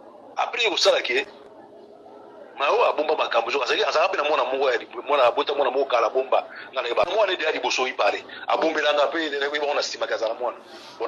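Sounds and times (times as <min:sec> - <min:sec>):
person talking rapidly: 0:00.4 - 0:01.3, 0:02.6 - 0:10.6.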